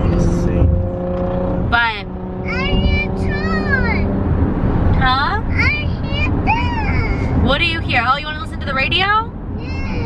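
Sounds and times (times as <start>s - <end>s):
car cabin engine and road drone: 0.0s - 10.0s
high-pitched voice drawing out phrases: 2.4s - 4.1s, 5.4s - 7.4s.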